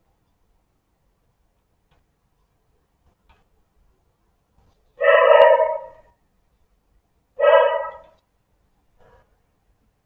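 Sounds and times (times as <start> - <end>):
loud animal calls: 5.0 - 6.1, 7.4 - 8.2.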